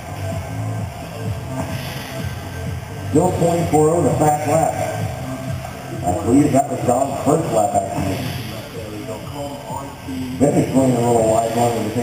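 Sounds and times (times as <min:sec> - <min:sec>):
race commentary: 0:03.1 - 0:12.0.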